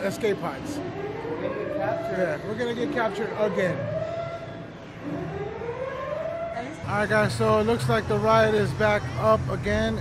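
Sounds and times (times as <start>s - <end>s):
wailing alarm siren: 0.0s - 10.0s.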